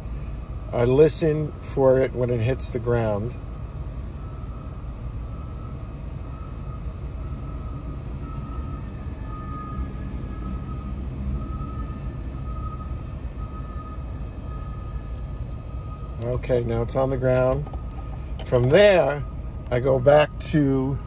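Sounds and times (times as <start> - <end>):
steady low rumble: 0.0 - 21.0
electric lift motor whine: 3.5 - 16.5.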